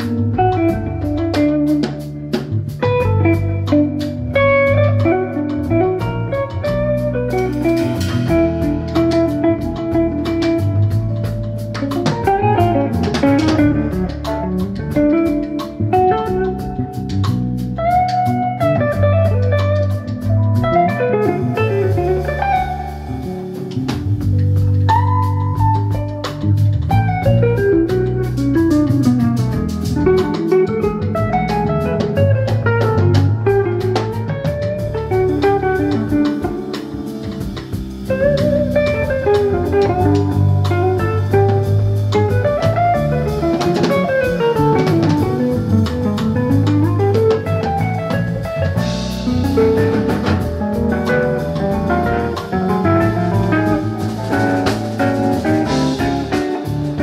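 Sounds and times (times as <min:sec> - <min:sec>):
bass: 0:00.0 - 0:57.0
drum kit: 0:00.0 - 0:57.0
electric guitar solo: 0:00.0 - 0:57.0
electric keyboard: 0:00.0 - 0:57.0.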